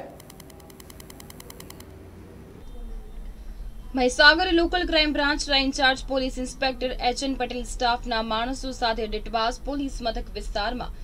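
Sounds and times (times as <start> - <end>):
faint rapid ticking: 0.0 - 1.9.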